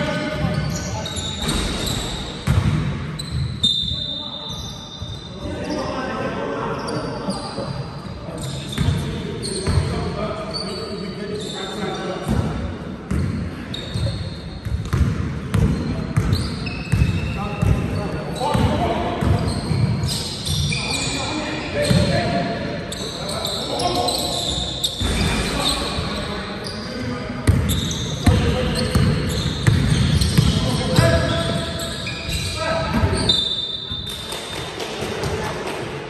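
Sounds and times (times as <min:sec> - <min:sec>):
shoes squeaking on floor: 0:00.3 - 0:02.5, 0:03.1 - 0:06.0, 0:06.7 - 0:12.1, 0:13.1 - 0:15.0, 0:15.6 - 0:34.8
basketball bouncing indoors: 0:01.4 - 0:03.6, 0:12.3 - 0:13.6, 0:14.6 - 0:20.1, 0:27.4 - 0:31.6.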